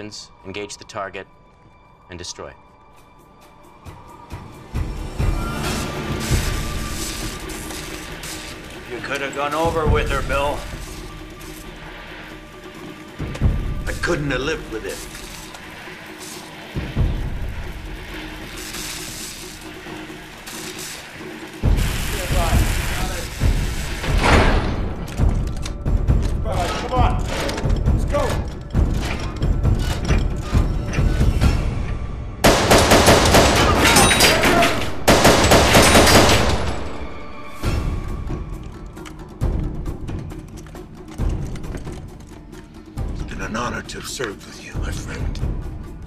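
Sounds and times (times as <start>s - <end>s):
dramatic music: 0.0s - 46.0s
automatic rifle fire: 32.5s - 33.8s, 35.1s - 36.6s.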